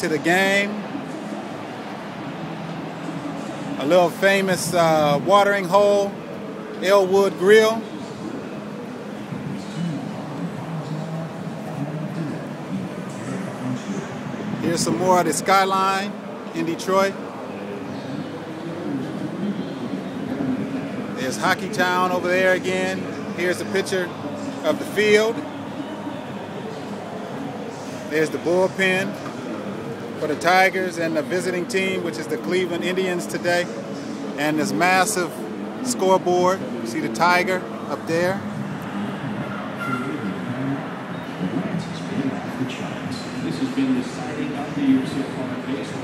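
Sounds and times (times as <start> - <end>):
distant indistinct voices: 0.0 - 46.0
low hum of traffic: 0.0 - 46.0
outdoor background hubbub: 0.0 - 46.0.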